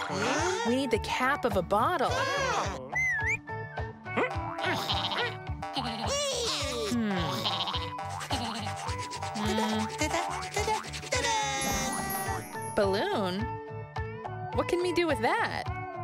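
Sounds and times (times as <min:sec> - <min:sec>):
squeaky character voices: 0:00.0 - 0:00.9, 0:02.1 - 0:03.0, 0:04.2 - 0:12.6
playful children's music: 0:00.0 - 0:16.0
cartoon sound effects: 0:04.2 - 0:12.6.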